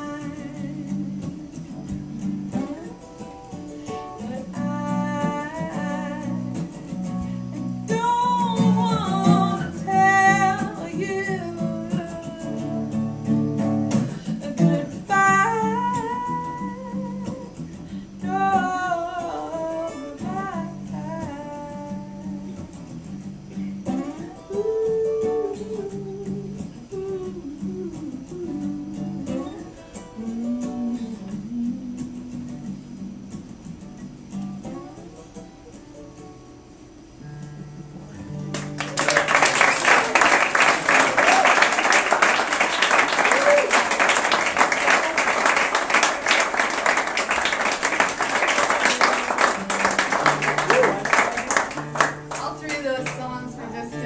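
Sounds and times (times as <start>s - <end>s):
woman and man singing together: 0.0s - 1.7s, 4.2s - 6.8s, 7.9s - 13.2s, 14.1s - 22.7s, 23.9s - 33.6s
acoustic guitar: 0.0s - 54.0s.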